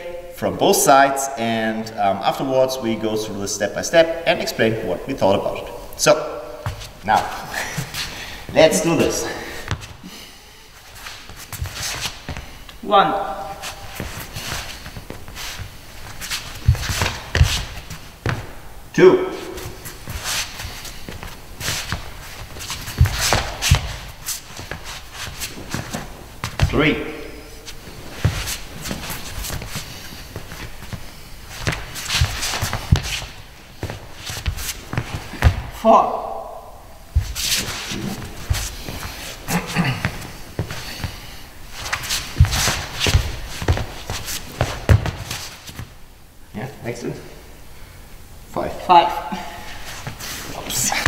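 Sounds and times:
footsteps and shoe scuffs: 6.6s - 12.8s, 13.4s - 18.5s, 19.4s - 26.8s, 27.6s - 35.7s, 37.1s - 46.0s.

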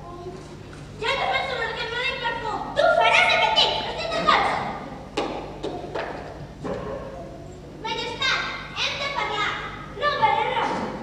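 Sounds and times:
child speaking: 0.0s - 4.8s, 7.2s - 11.0s.

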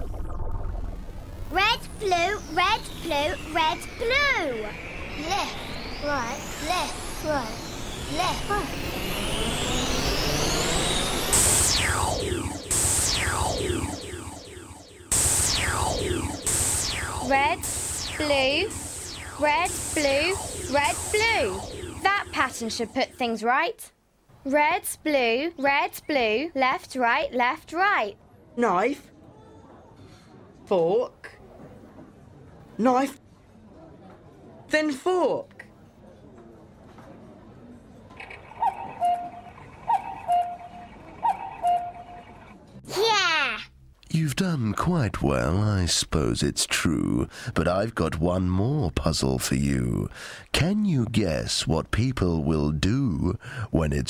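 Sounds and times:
cartoon magic sound effect: 0.0s - 23.3s
cuckoo clock calling: 38.2s - 42.5s.

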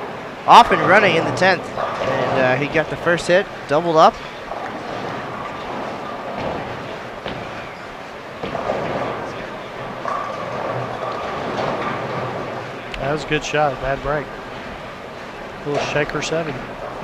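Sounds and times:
bowling balls rolling: 0.0s - 17.0s
crowd murmur: 0.0s - 17.0s.

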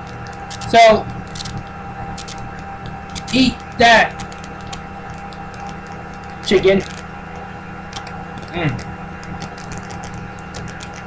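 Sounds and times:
low hum: 0.0s - 11.0s
person chewing: 0.0s - 11.0s.

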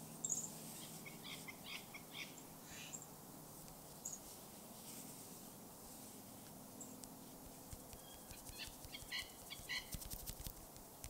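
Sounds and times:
small bird chirping: 0.2s - 3.1s, 7.8s - 10.2s.

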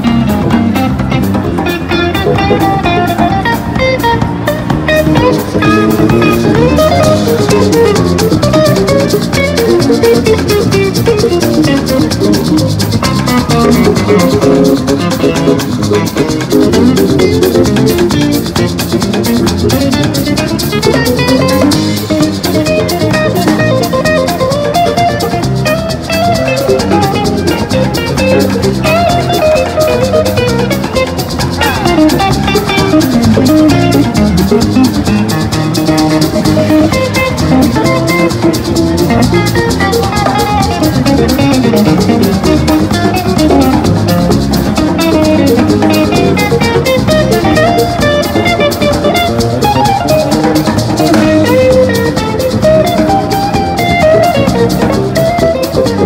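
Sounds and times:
drum kit: 0.0s - 56.0s
electric bass: 0.0s - 56.0s
electric guitar: 0.0s - 56.0s
shaker rhythm: 0.0s - 56.0s.

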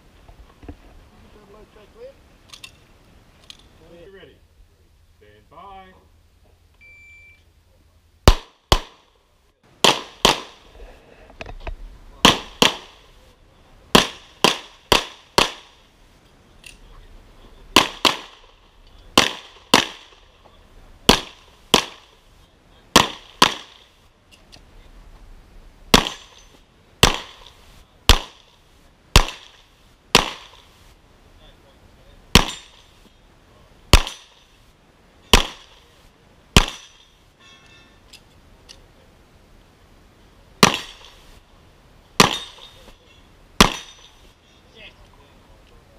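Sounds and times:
shot timer beep: 6.8s - 7.4s
pistol shots: 8.2s - 9.1s, 9.8s - 10.6s, 12.2s - 13.1s, 13.9s - 15.8s, 17.7s - 18.5s, 19.1s - 20.2s, 21.1s - 22.2s, 22.9s - 23.9s, 25.9s - 26.4s, 27.0s - 28.5s, 29.1s - 30.7s, 32.3s - 32.8s, 33.9s - 34.4s, 35.3s - 35.8s, 36.6s - 37.0s, 40.6s - 41.2s, 42.2s - 42.7s, 43.6s - 44.0s.

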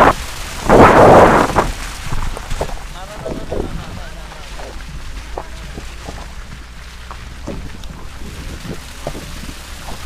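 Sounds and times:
wind rushing over microphone: 0.0s - 4.1s, 7.3s - 10.0s
car rumbling on dirt road: 0.0s - 10.0s.

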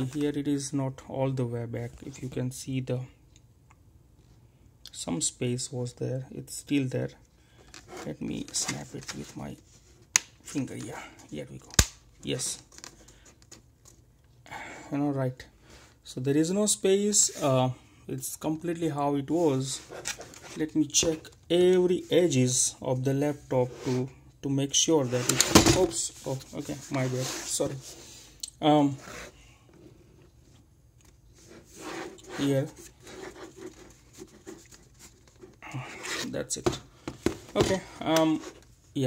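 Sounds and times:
person speaking: 0.0s - 3.2s, 7.9s - 9.7s, 10.4s - 12.7s, 14.9s - 29.4s, 31.8s - 34.8s, 37.5s - 39.0s.

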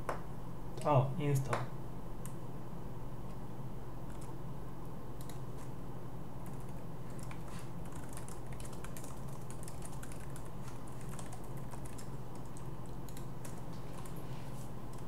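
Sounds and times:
steady low hum: 0.0s - 15.0s
typing on computer keyboard: 6.4s - 14.2s.

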